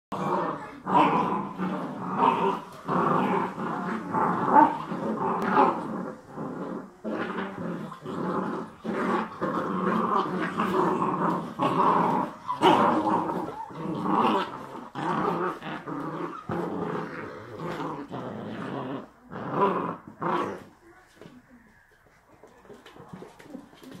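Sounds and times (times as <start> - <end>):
puppies growling: 0.1 - 24.0
faint scuffling: 20.6 - 24.0.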